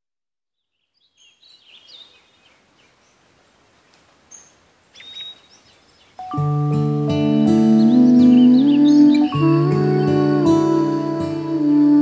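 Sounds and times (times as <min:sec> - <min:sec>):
faint birdsong chirps: 0:00.5 - 0:12.0.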